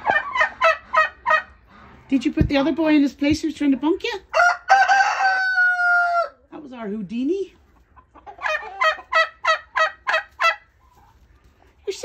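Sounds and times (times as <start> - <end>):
turkey calling: 0.0 - 1.9, 7.8 - 11.3.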